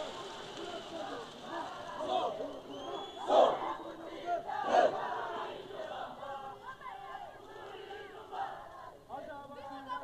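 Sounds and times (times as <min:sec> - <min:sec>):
loud collective shouts: 0:00.0 - 0:08.9
crowd shouting and cheering: 0:00.0 - 0:09.1.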